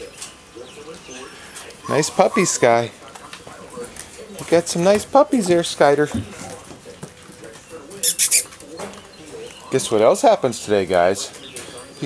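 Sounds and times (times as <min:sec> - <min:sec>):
puppies rustling on wooden deck: 0:03.1 - 0:07.9.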